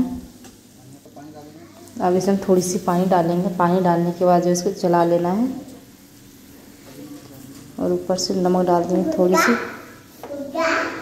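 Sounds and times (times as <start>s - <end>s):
sauce sizzling in a frying pan: 0.0s - 11.0s.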